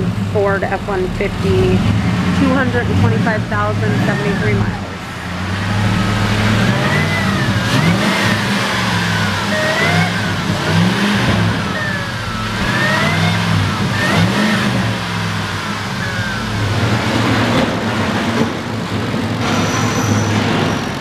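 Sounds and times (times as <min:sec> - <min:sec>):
engine revving: 0:00.0 - 0:21.0
high engine whine: 0:00.0 - 0:21.0.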